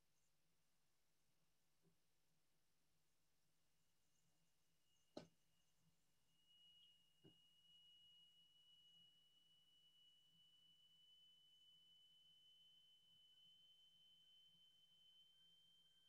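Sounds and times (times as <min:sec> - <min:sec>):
faint high-pitched tone: 0:04.8 - 0:16.0.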